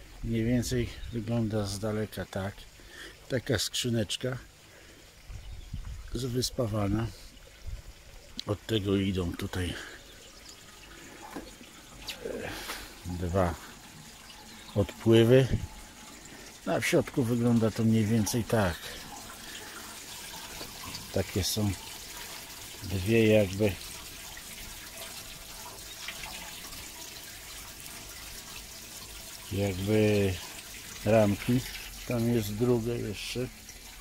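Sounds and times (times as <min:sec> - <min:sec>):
water running through pipework: 0:00.0 - 0:34.0.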